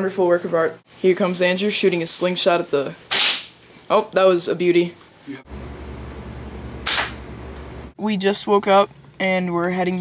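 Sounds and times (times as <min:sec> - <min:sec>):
slingshot snap: 0:03.1 - 0:03.5, 0:06.8 - 0:07.2
steady low hum: 0:05.2 - 0:10.0.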